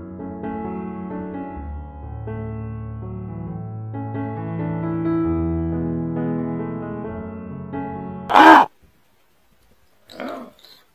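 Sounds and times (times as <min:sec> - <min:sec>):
crow cawing: 0:08.3 - 0:08.7.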